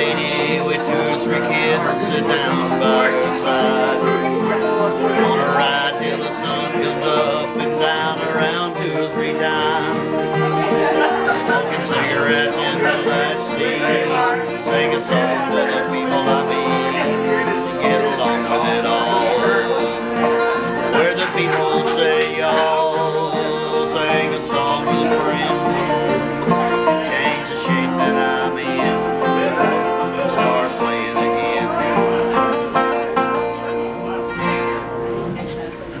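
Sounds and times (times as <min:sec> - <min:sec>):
acoustic guitar: 0:00.0 - 0:36.0
banjo: 0:00.0 - 0:36.0
harmonica: 0:00.0 - 0:36.0.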